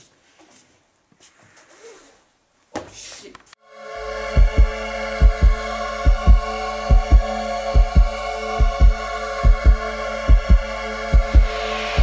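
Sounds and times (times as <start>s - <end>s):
sustained drone: 3.6s - 12.0s
heartbeat double thumps: 4.3s - 12.0s.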